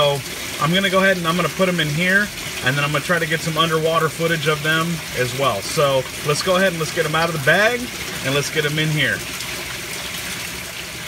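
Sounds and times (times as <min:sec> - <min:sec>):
running water rushing: 0:00.0 - 0:11.0.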